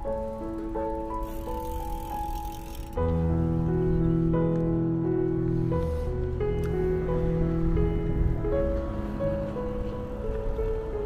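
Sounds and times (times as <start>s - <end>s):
slow soft piano music: 0.0s - 11.0s.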